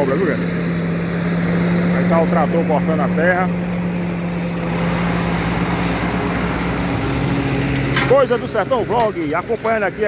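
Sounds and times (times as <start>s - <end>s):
tractor engine under load: 0.0s - 10.0s.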